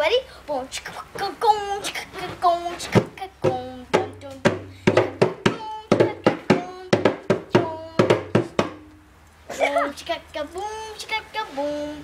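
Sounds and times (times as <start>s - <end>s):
girl singing: 0.0s - 8.9s, 9.5s - 12.0s.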